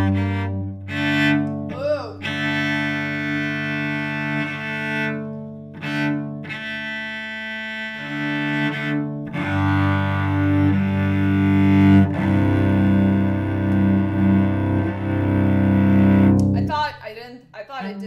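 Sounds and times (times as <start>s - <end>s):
cello bowed double stops: 0.0s - 16.7s.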